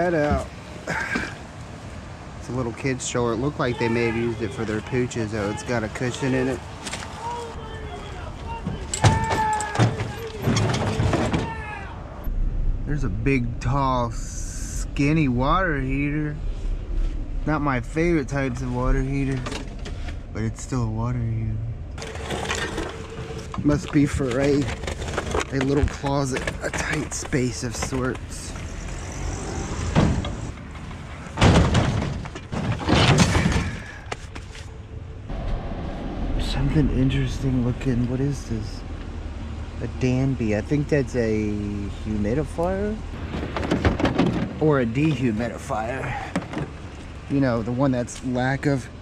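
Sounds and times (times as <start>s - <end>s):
bike trailer clattering and scraping: 6.7s - 11.7s, 22.0s - 34.1s, 43.1s - 45.4s, 46.0s - 46.9s.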